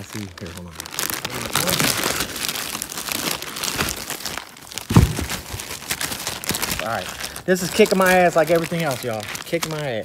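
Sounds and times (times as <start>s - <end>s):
plastic wrapping crinkling: 0.0s - 10.0s
thump: 4.9s - 5.6s.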